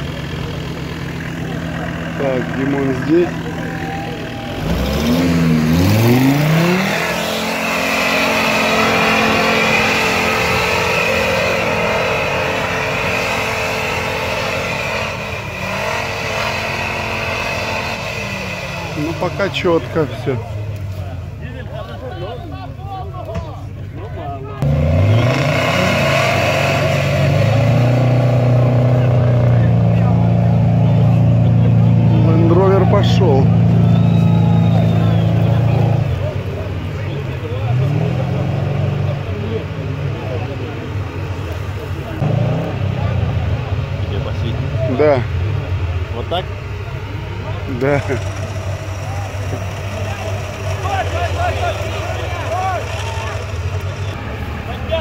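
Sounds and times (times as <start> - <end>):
faint voices: 0.0 - 6.8, 28.2 - 55.0
off-road vehicle engine revving: 0.0 - 22.6, 24.4 - 55.0.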